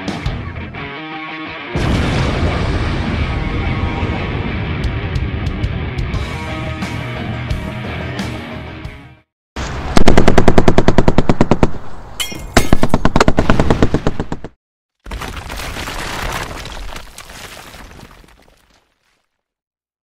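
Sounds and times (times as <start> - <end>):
sudden crash of noise: 1.8 - 4.8
rapid automatic gunfire: 10.0 - 11.8, 12.8 - 14.5.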